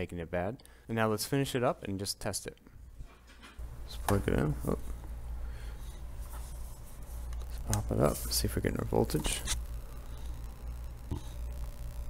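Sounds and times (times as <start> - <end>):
rubbing and scraping handling noise: 3.0 - 9.6
low hum: 3.6 - 12.0.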